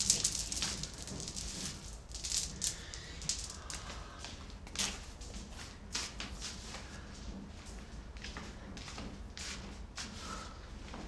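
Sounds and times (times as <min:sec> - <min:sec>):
beaded curtain rattling: 0:00.0 - 0:04.0.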